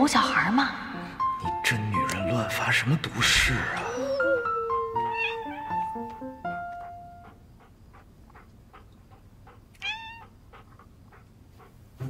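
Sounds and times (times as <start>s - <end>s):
soft background music: 0.0s - 7.9s
kitten meowing: 3.8s - 6.0s, 9.8s - 10.3s
faint ticking beat: 5.8s - 12.0s.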